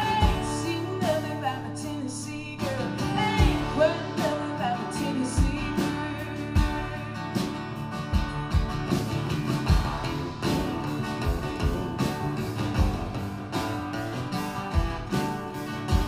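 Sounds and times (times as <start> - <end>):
acoustic guitars playing country song: 0.0 - 16.0
low thumps: 6.6 - 16.0.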